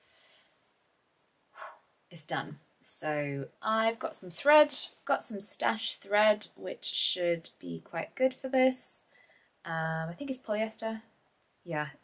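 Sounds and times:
woman breathing: 0.0s - 0.8s, 1.5s - 1.9s, 9.1s - 9.6s.

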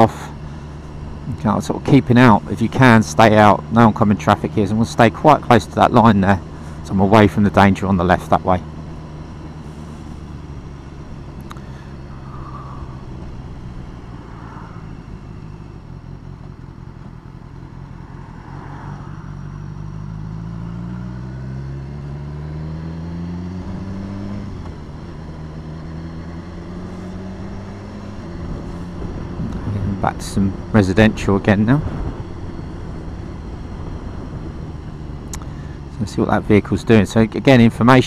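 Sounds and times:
motorcycle engine accelerating: 0.0s - 38.0s.

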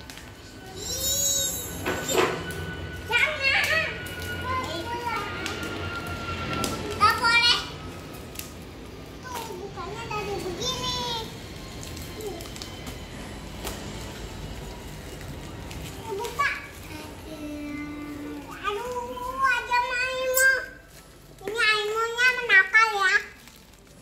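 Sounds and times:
children squealing: 0.7s - 6.2s.

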